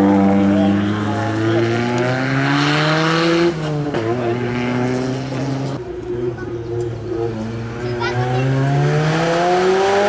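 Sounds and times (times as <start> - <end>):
turbocharged car engine under load: 0.0 - 10.0.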